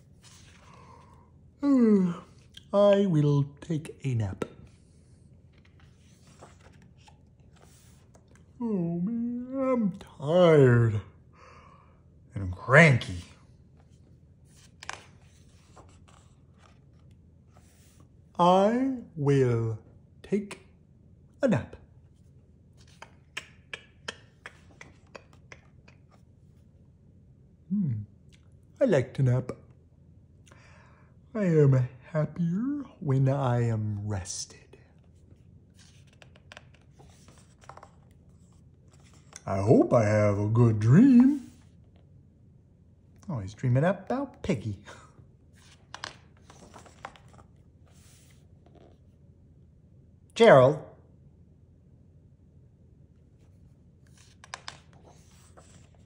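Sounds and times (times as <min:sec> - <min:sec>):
book pages turning: 0:00.0 - 0:01.2, 0:04.3 - 0:08.6, 0:13.0 - 0:18.1, 0:22.1 - 0:26.7, 0:34.9 - 0:40.0, 0:45.5 - 0:49.2, 0:53.4 - 0:56.0.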